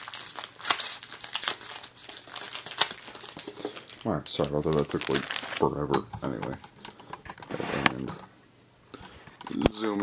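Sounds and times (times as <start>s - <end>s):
plastic packaging rustling: 0.0s - 6.4s.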